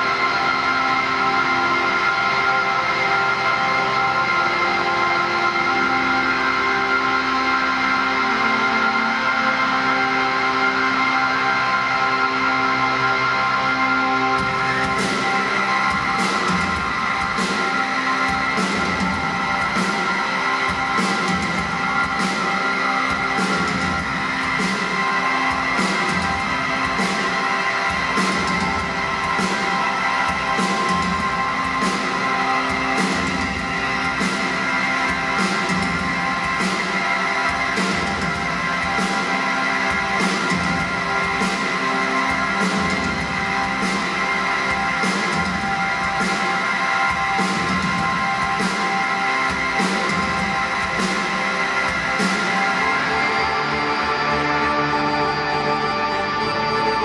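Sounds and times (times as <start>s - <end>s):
live band playing instrumental: 14.3s - 54.5s.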